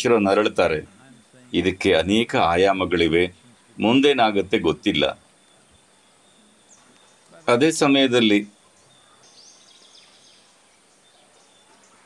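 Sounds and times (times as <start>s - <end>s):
man speaking: 0.0s - 5.2s, 7.2s - 8.6s
faint outdoor background: 0.0s - 12.0s
bird twittering: 0.8s - 12.0s.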